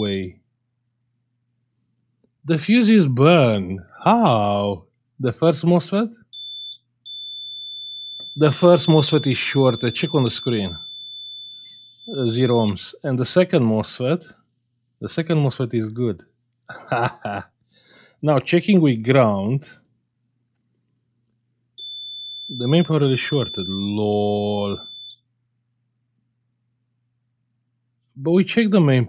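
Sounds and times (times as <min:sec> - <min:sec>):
meter continuity beeps: 0:00.0 - 0:00.3, 0:06.3 - 0:13.0, 0:21.8 - 0:25.2
faint low hum: 0:00.0 - 0:29.0.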